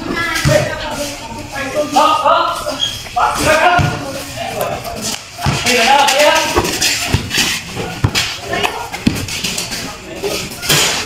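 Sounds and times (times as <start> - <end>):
basketball bouncing on concrete: 5.4 - 9.5.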